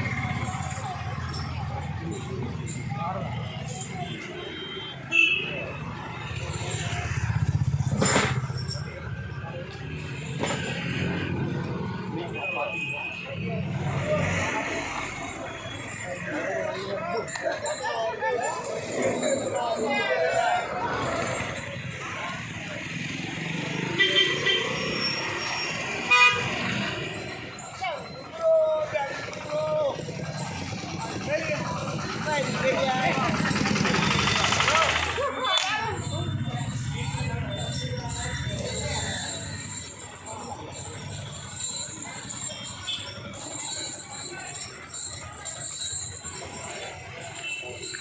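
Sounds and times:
rumble of engines: 0:00.0 - 0:48.0
vehicle horns honking: 0:04.0 - 0:05.8, 0:23.8 - 0:25.2, 0:25.9 - 0:26.8
vehicle engine running: 0:30.0 - 0:35.4.

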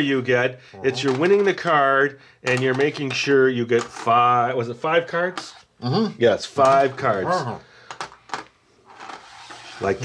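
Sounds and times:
wooden game pieces clicking: 0:01.0 - 0:01.9, 0:02.5 - 0:04.4, 0:07.8 - 0:08.5
soft scrape on cardboard board: 0:08.9 - 0:10.0.

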